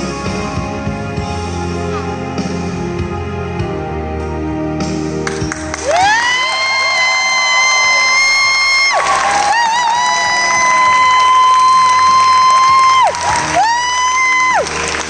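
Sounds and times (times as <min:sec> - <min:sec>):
audience cheering: 0:05.6 - 0:15.0.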